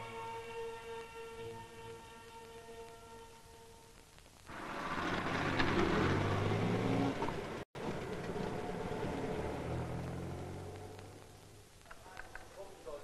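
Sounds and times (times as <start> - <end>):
traffic engine drone: 4.5 - 13.0.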